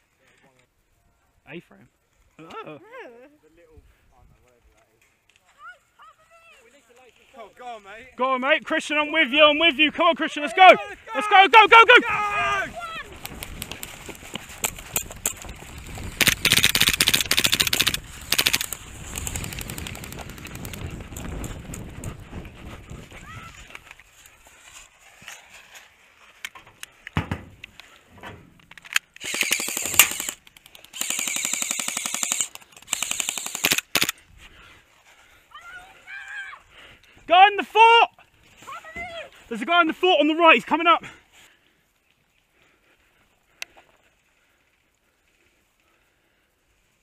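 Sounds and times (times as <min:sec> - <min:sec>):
person running: 0:12.9 - 0:25.3
airsoft guns full-auto bursts: 0:16.1 - 0:20.8, 0:29.2 - 0:34.2.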